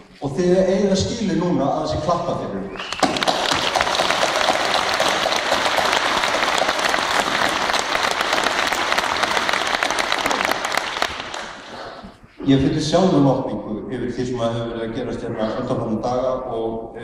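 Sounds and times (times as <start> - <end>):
audience applause: 2.8 - 12.0.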